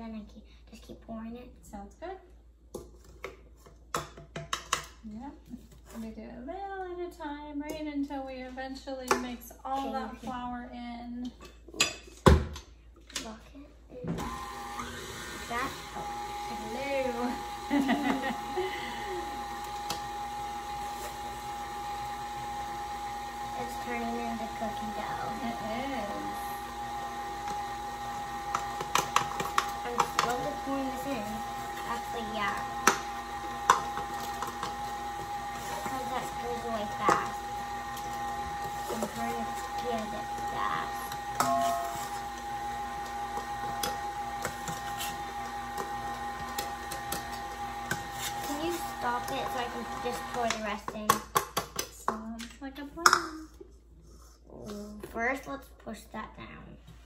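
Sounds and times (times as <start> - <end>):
stand mixer running: 14.2 - 51.4.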